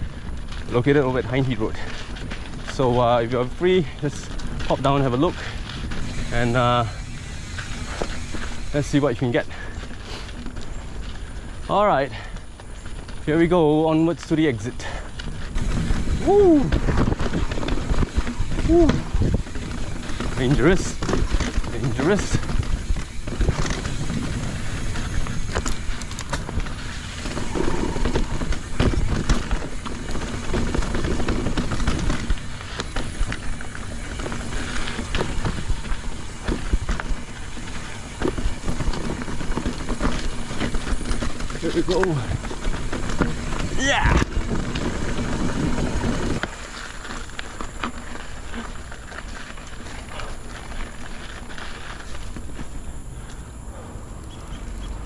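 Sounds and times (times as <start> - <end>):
bike rattling and knocking: 0.0 - 53.0
tyres rolling over dirt: 0.0 - 55.0.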